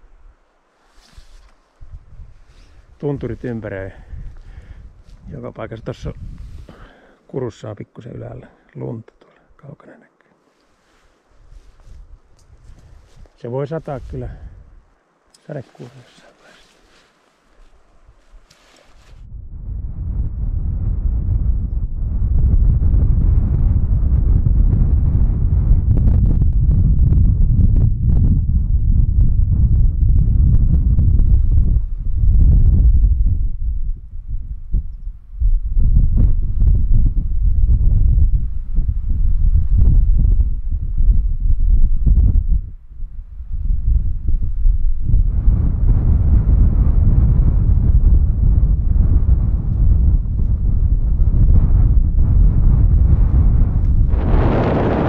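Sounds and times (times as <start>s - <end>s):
wind buffeting microphone: 1.1s - 7.0s, 11.2s - 14.9s, 18.0s - 55.0s.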